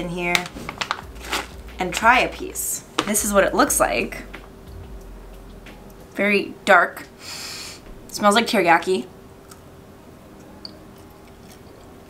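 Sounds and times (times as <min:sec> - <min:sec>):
low steady room hum: 0:00.0 - 0:12.0
faint chewing: 0:10.4 - 0:12.0.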